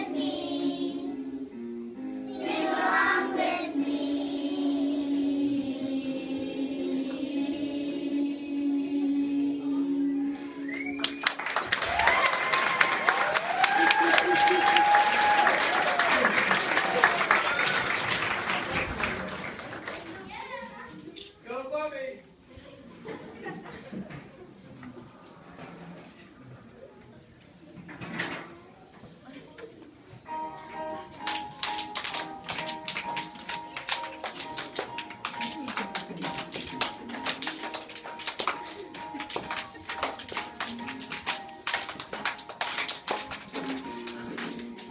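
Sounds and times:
song playing: 0.0 - 11.7, 30.3 - 44.9
held musical note: 7.5 - 11.4
people cheering: 10.4 - 19.8
audience applause: 10.6 - 20.4, 31.3 - 41.0
children clapping: 10.8 - 20.4, 31.2 - 44.9.

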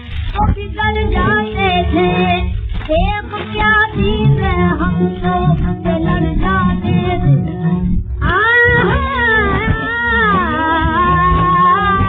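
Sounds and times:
woman singing with accompaniment: 0.0 - 12.0.

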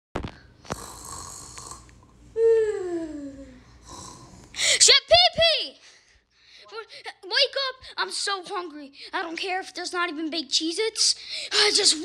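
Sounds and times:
person snoring: 0.7 - 4.6.

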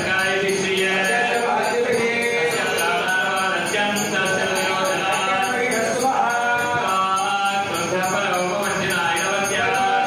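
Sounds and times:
men chanting together: 0.0 - 10.0.

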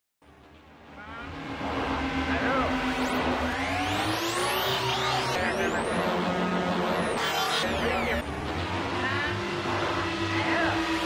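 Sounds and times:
pitch-shifted music: 0.2 - 11.0
steady low drone: 0.2 - 11.0.

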